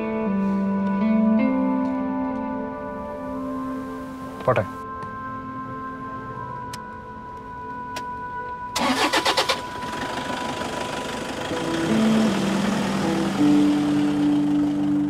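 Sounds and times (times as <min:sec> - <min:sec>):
car engine starter cranking: 0:08.8 - 0:14.9
car engine running: 0:08.8 - 0:15.0.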